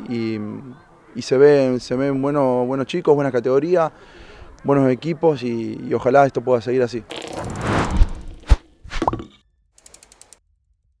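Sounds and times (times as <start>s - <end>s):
short rising tone: 7.1s - 9.0s
whoosh: 7.1s - 9.0s
small ticks: 9.8s - 10.4s.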